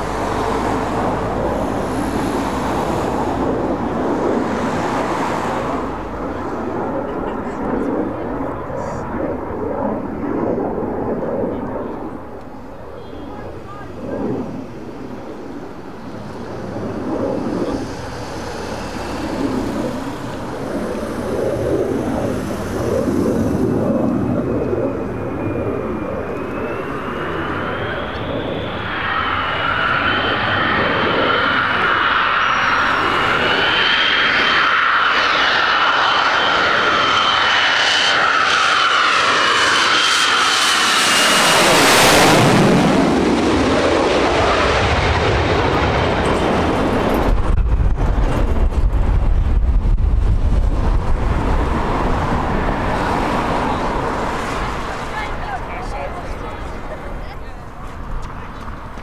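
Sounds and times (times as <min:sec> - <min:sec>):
jet engine roar and whine: 0:00.0 - 0:59.0
jet passing overhead: 0:00.0 - 0:59.0.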